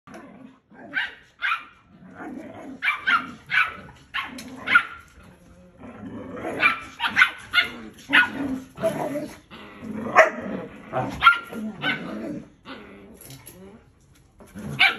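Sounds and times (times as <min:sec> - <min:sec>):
dogs growling: 0:00.1 - 0:01.0, 0:01.8 - 0:14.9.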